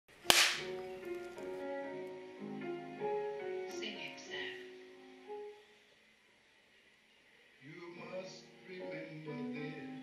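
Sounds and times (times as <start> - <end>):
music with held notes: 0.1 - 6.0
clapperboard snapping shut: 0.3 - 0.8.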